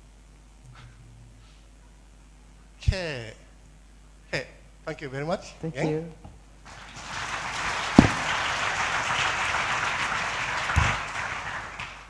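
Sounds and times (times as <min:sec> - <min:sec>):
audience applauding: 0:06.7 - 0:12.0.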